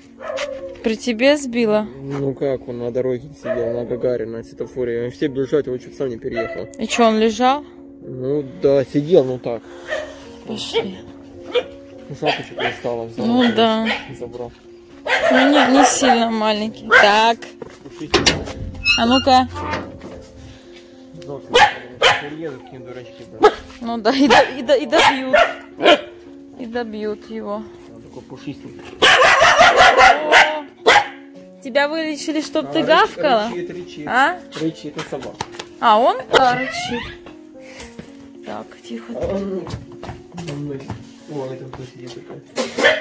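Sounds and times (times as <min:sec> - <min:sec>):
background music: 0:00.0 - 0:43.0
dog barking: 0:00.2 - 0:00.8, 0:03.4 - 0:04.0, 0:06.3 - 0:06.8, 0:09.8 - 0:10.8, 0:11.4 - 0:14.3, 0:15.0 - 0:17.3, 0:21.5 - 0:22.7, 0:23.4 - 0:26.2, 0:28.9 - 0:31.3, 0:36.3 - 0:37.1, 0:42.7 - 0:43.0.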